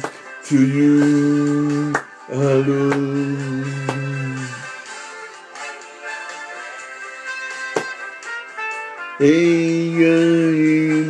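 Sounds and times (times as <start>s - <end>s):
background music: 0.0s - 11.0s
man singing a long held note: 9.2s - 11.0s.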